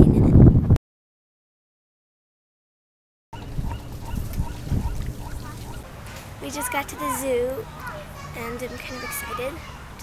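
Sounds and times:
birds calling: 3.4s - 9.9s.

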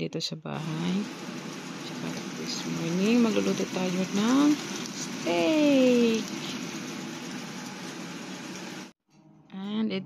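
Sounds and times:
steak sizzling in a frying pan: 0.6s - 8.9s.

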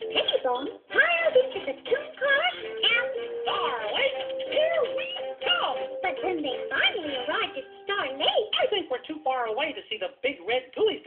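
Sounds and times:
bouncy cartoon music: 0.0s - 9.8s.

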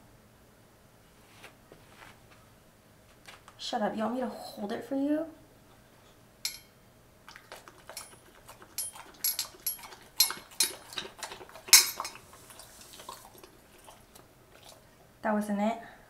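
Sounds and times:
clinks on metal bowl: 6.5s - 6.7s, 7.8s - 12.2s
dog lapping water: 7.2s - 15.1s.

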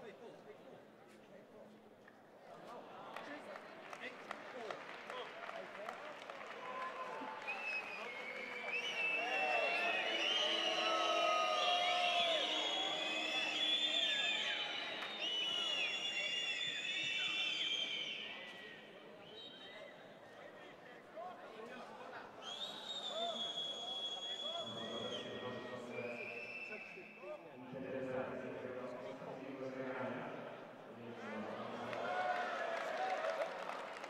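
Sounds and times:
crowd cheering and shouting: 9.0s - 15.1s.

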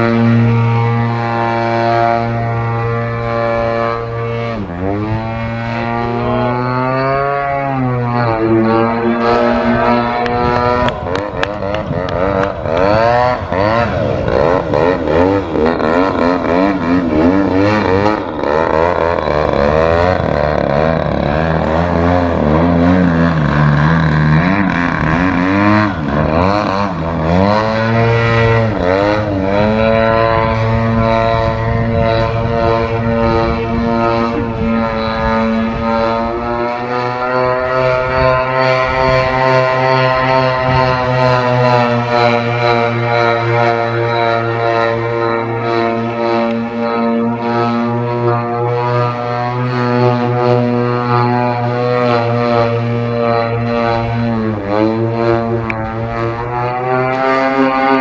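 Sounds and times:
model airplane engine and propeller: 0.0s - 58.0s.

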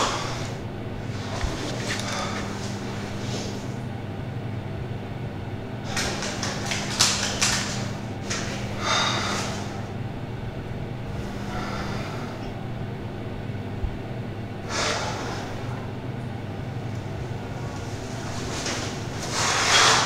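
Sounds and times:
man breathing hard: 0.0s - 0.7s, 8.6s - 9.9s, 11.0s - 12.6s, 14.6s - 15.8s, 19.2s - 20.0s
steady low hum: 0.0s - 20.0s.

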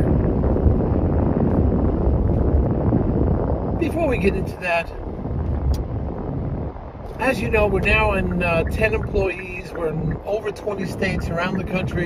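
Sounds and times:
low uneven rumble: 0.0s - 12.0s.

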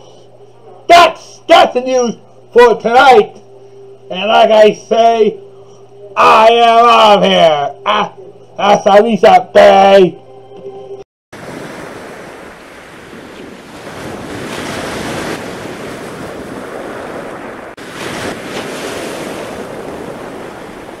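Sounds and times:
ocean surf: 11.4s - 21.0s
wind buffeting microphone: 11.4s - 21.0s.

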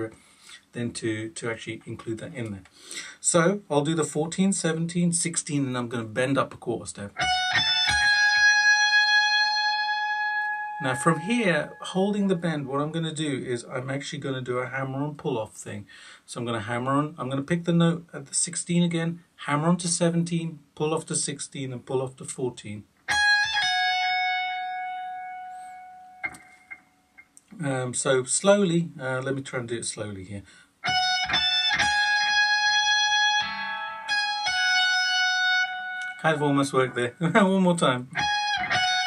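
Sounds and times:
bent electric guitar note: 7.2s - 12.5s
electric guitar note ringing: 7.2s - 12.7s, 23.1s - 27.3s, 30.8s - 37.1s, 38.2s - 39.0s.

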